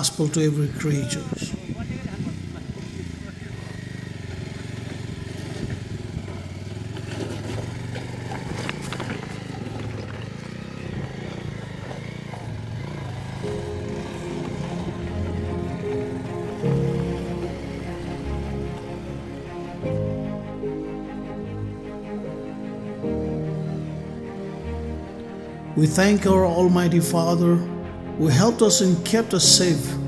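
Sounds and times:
background music: 0.0 - 1.8, 10.0 - 30.0
motorcycle engine at low speed: 0.1 - 27.2.

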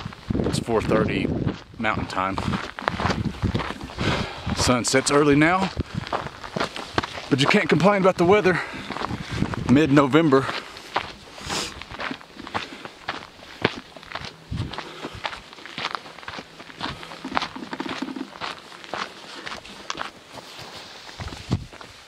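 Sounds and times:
footsteps on dirt trail: 0.0 - 22.0.

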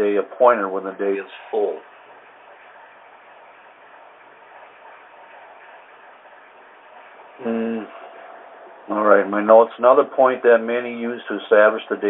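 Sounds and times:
phone line hiss: 7.4 - 9.6.

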